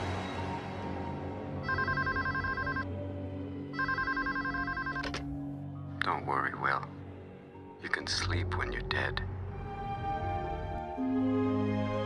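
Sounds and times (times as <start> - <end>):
low music drone: 0.0 - 12.0
electronic telephone trill: 1.6 - 2.8, 3.8 - 5.2.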